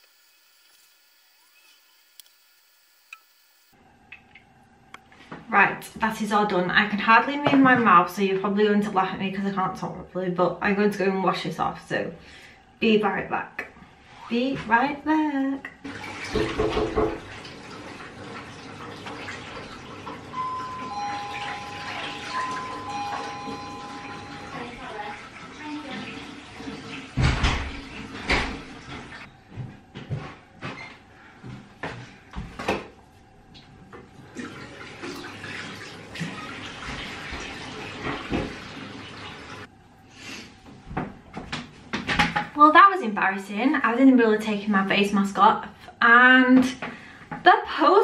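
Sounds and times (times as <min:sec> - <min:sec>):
running tap water: 0:15.8 - 0:29.3, 0:33.6 - 0:39.7
knocks and thumps: 0:16.3 - 0:17.3
two-tone doorbell chime: 0:20.4 - 0:25.0.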